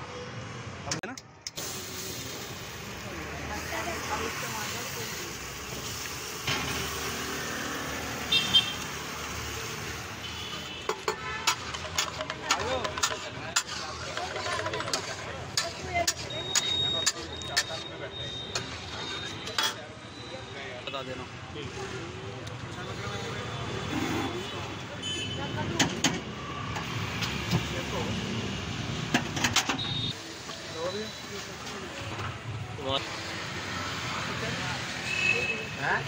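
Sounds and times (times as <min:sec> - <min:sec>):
traffic: 0:00.0 - 0:36.0
food sizzling on griddle: 0:01.6 - 0:10.2
metal spatula tapping griddle: 0:10.9 - 0:17.8
voices: 0:12.0 - 0:28.4.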